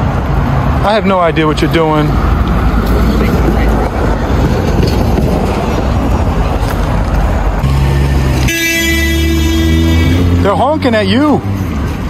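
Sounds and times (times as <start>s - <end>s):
street traffic passing: 0.0s - 12.0s
vehicle horn honking: 8.0s - 10.7s.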